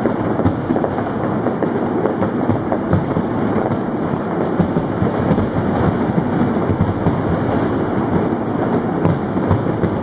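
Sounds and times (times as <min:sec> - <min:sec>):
fireworks rumble: 0:00.0 - 0:10.0
sharp firework cracks: 0:00.0 - 0:10.0.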